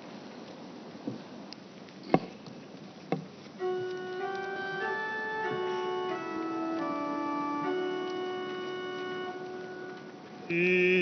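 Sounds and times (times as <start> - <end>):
pipe organ sustained chord: 3.6 - 11.0.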